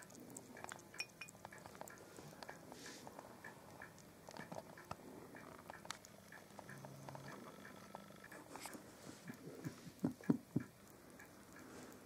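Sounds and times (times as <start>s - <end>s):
hedgehog licking liquid: 0.0s - 7.4s.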